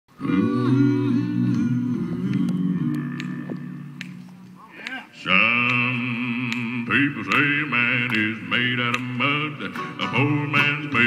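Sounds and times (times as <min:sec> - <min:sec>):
low men's voices singing: 0:00.1 - 0:11.0.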